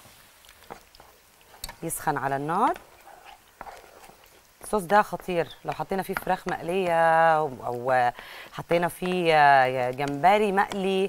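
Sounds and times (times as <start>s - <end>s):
fries sizzling in hot oil: 0.0s - 11.0s
spoon knocking in pan: 4.6s - 7.2s, 8.6s - 11.0s.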